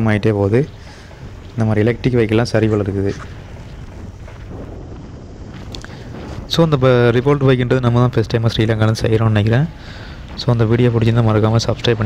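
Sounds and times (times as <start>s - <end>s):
man talking: 0.0s - 0.8s, 1.6s - 3.3s, 6.5s - 9.8s, 10.4s - 12.0s.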